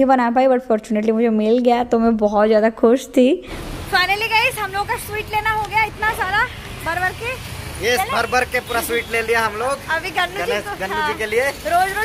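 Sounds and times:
people talking: 0.0 - 12.0
street traffic rumble: 0.7 - 12.0.

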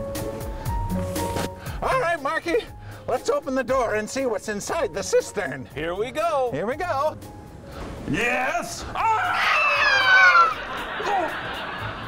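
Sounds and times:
background music with steady beat: 0.0 - 12.0.

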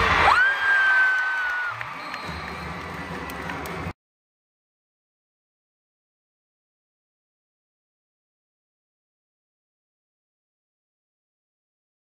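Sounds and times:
crowd cheering: 0.0 - 4.0.

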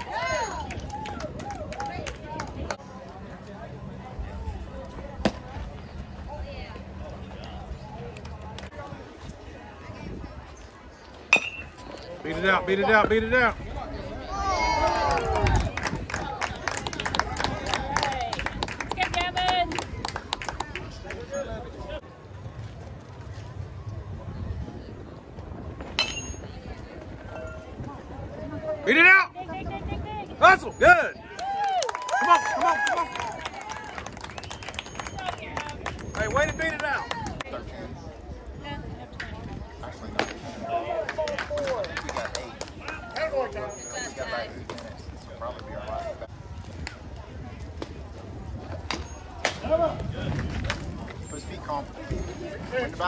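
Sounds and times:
metal bat hitting ball: 11.3 - 11.8, 25.9 - 26.4.

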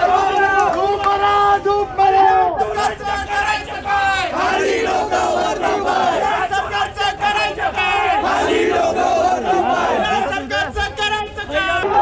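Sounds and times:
crowd shouting slogans: 0.0 - 12.0.

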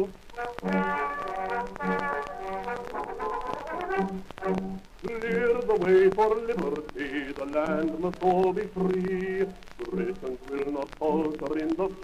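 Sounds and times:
brass melody: 0.3 - 4.8.

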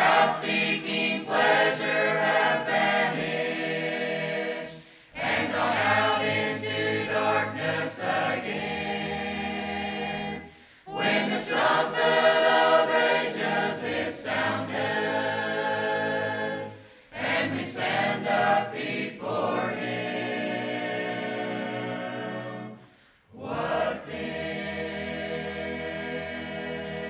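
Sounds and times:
mixed choir singing a cappella: 0.0 - 27.0.

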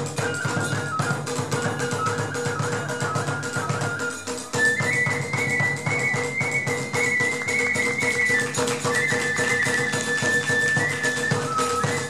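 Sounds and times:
bamboo flute high notes: 0.0 - 12.0
fast drumming: 0.0 - 12.0.

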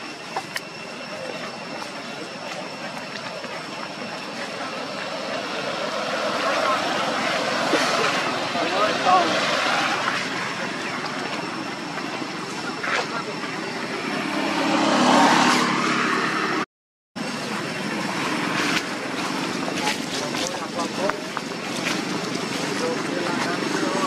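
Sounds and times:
voices: 0.0 - 16.6, 17.2 - 24.0
motor vehicle: 0.0 - 24.0
road traffic: 0.0 - 24.0.

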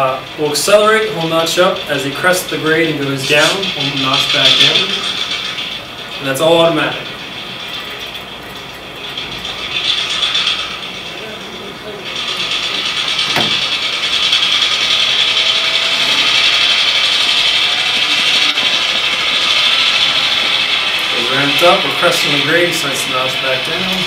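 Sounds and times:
model locomotive diesel engine sound: 0.0 - 24.0.

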